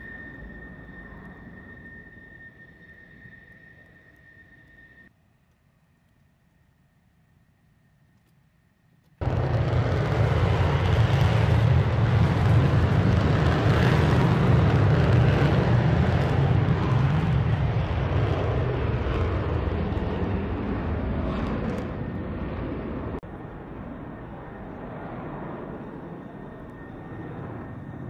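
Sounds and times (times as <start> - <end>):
jet engine rumble: 9.2 - 28.0.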